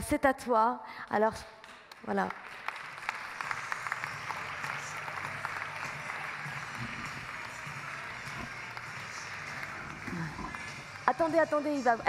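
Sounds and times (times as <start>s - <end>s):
audience applauding: 1.6s - 12.0s.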